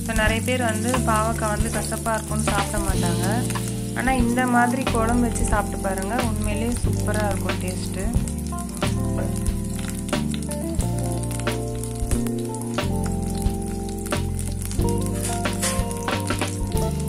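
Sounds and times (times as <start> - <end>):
background music with steady beat: 0.0 - 17.0
vegetable slices sizzling in oil: 0.0 - 17.0.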